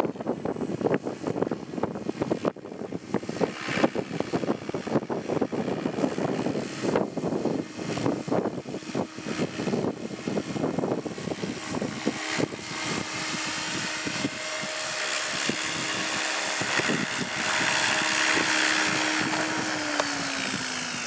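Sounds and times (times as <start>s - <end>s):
electric motor whine: 0.0s - 21.0s
helicopter rotors humming: 0.0s - 21.0s
wind on microphone: 0.0s - 21.0s.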